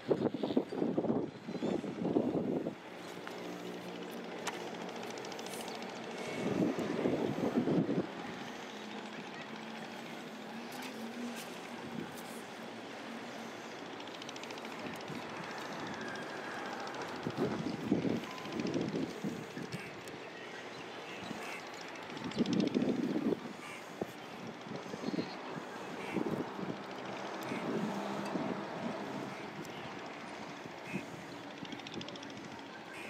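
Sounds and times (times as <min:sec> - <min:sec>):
distant engine drone: 0:01.5 - 0:33.0.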